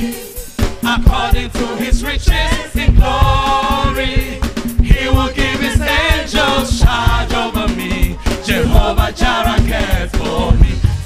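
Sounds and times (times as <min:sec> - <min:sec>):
drum beat: 0:00.0 - 0:11.0
voices singing along: 0:00.0 - 0:11.0
man singing into a microphone: 0:07.6 - 0:08.8.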